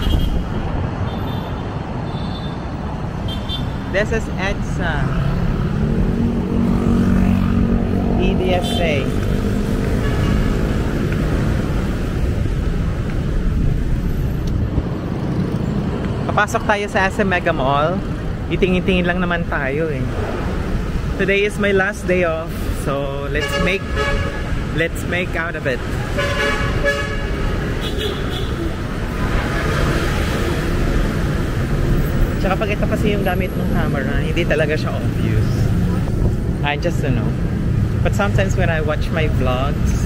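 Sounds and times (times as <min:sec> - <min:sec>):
road traffic rumble: 0:00.0 - 0:40.0.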